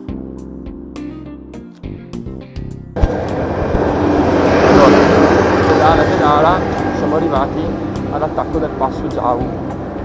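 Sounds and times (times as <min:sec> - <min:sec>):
music: 0:00.0 - 0:10.0
wind on microphone: 0:03.0 - 0:08.0.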